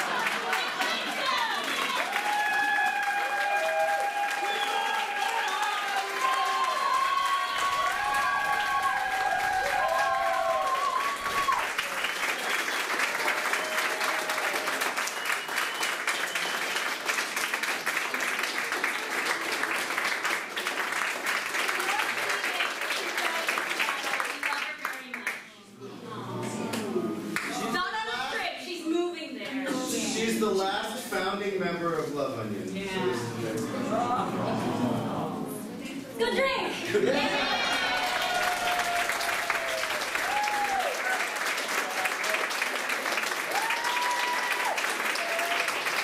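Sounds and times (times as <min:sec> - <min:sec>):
voices cheering: 0:00.0 - 0:15.1, 0:37.0 - 0:46.0
audience applauding: 0:00.0 - 0:25.4, 0:36.9 - 0:46.0.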